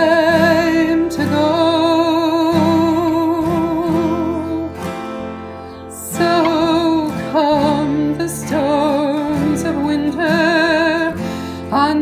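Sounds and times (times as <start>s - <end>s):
acoustic guitar chords: 0.0s - 12.0s.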